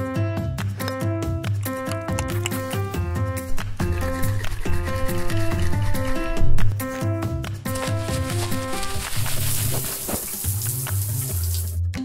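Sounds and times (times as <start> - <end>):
background music with bass line: 0.0 - 12.0
shower spray hissing: 8.7 - 11.8.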